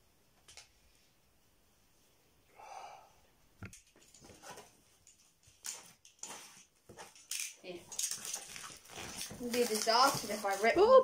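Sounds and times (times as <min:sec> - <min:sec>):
packaging rustling and crinkling: 0:03.8 - 0:11.0.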